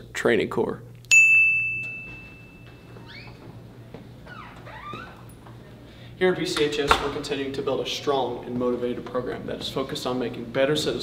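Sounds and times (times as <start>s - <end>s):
bright bell-like ding: 1.1s - 2.9s.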